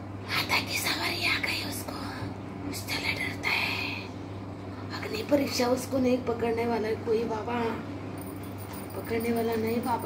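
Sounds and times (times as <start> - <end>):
steady low hum: 0.0 - 10.0
woman whispering: 0.3 - 4.2.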